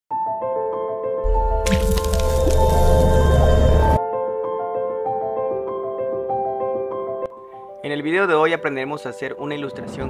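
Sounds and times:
sustained high music notes: 1.8 - 4.0.

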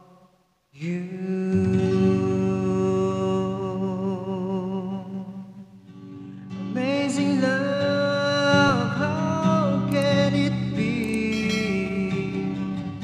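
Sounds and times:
acoustic guitar chord strummed: 0.0 - 13.0.

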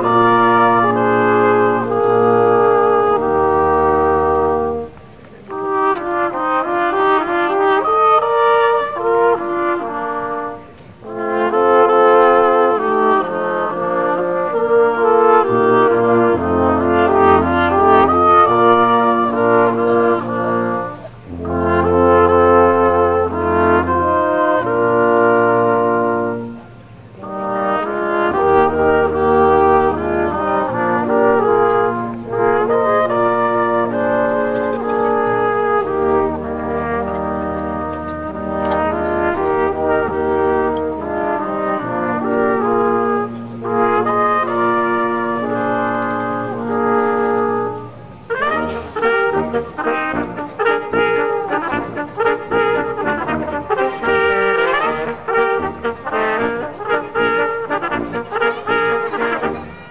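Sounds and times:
horns playing melody: 0.0 - 59.9
tuba bass line: 0.0 - 59.9.

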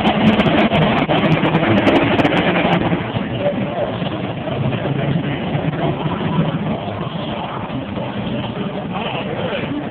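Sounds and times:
truck engines rumbling: 0.0 - 9.9.

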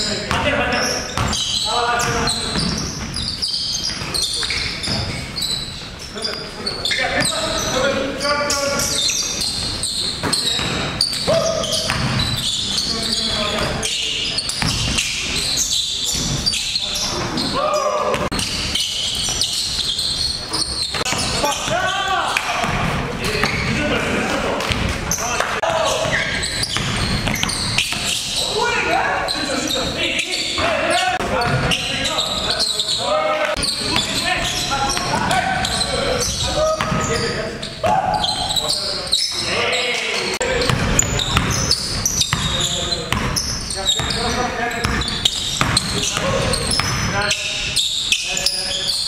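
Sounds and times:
players shouting: 17.4 - 18.4, 21.0 - 24.6.

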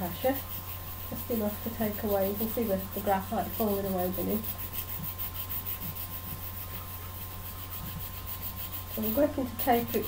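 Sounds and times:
nail file scratching pencil lead: 0.0 - 10.0.

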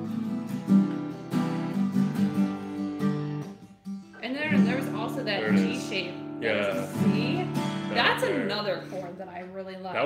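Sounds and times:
acoustic guitar strummed: 0.0 - 9.3.

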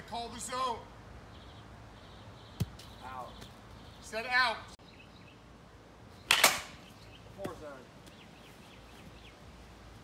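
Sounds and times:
baseball bat cracking ball: 6.3 - 6.8.

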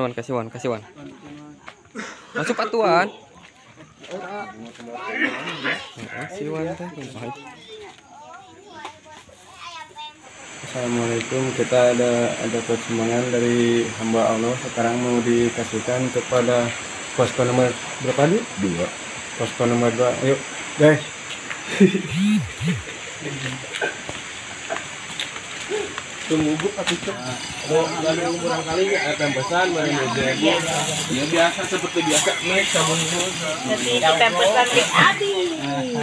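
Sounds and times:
low background noise: 0.0 - 36.0
people talking in background: 0.0 - 36.0
children's voices: 4.3 - 6.2, 7.2 - 10.3, 34.7 - 36.0.

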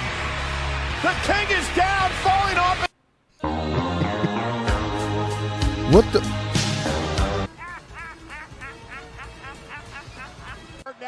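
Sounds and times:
man laughing shrilly: 5.9 - 6.2, 7.5 - 10.9.

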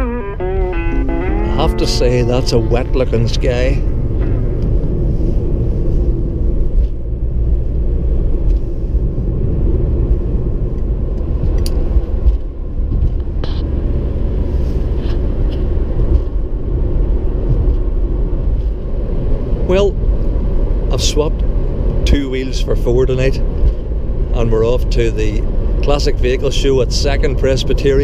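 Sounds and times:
car engine and tyre rumble: 0.0 - 28.0.

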